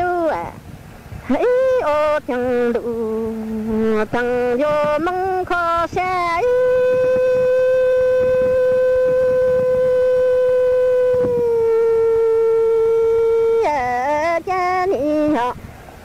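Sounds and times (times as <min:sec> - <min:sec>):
person singing: 0:01.3 - 0:15.6.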